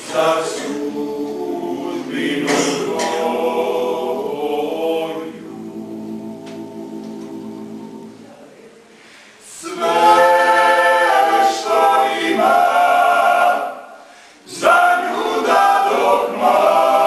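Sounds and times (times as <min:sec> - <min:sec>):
male choir singing unaccompanied: 0:00.0 - 0:08.2, 0:09.5 - 0:17.0.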